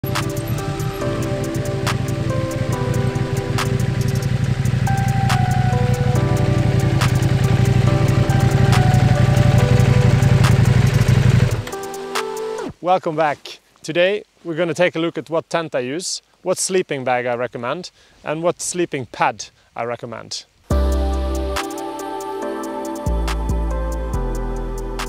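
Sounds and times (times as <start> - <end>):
motorcycle engine running: 0.0 - 11.8
background music with beat: 0.0 - 12.7, 20.7 - 25.0.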